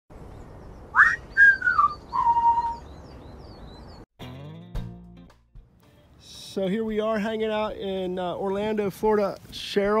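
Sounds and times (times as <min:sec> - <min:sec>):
person whistling notes: 0:01.0 - 0:02.8.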